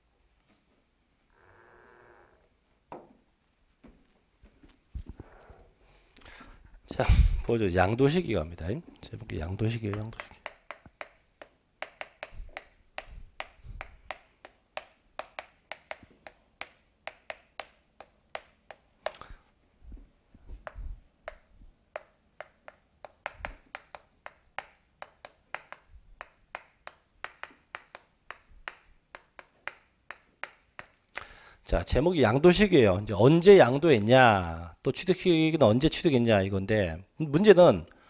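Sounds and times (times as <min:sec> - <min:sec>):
chalk tapping on blackboard: 0:09.2 - 0:19.3, 0:20.5 - 0:31.3.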